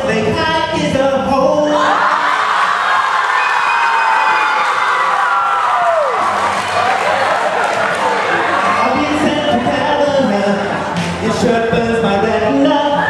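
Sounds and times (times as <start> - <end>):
schoolchildren cheering and shrieking: 1.8 - 9.3
singing: 8.6 - 13.0.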